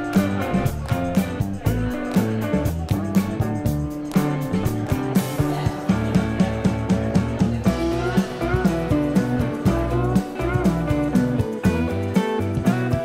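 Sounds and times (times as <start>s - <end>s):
music with steady beat: 0.0s - 13.0s.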